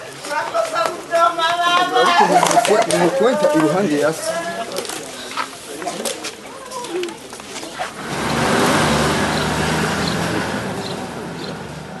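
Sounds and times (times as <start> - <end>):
vehicle engine running: 7.9 - 12.0.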